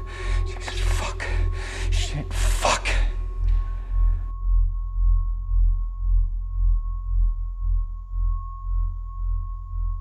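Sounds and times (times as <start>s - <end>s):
person breathing hard: 0.0s - 4.3s
low pulsing music drone: 0.0s - 10.0s.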